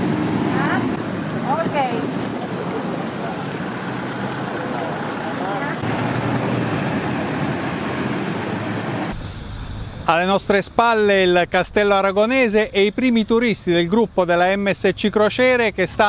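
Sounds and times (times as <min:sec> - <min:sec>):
road traffic: 0:00.0 - 0:16.0.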